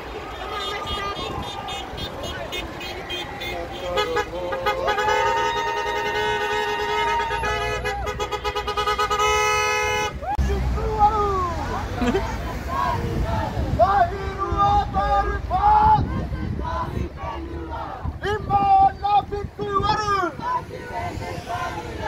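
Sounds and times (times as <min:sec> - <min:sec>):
car horn: 0:00.0 - 0:10.3
crowd voices: 0:00.0 - 0:22.0.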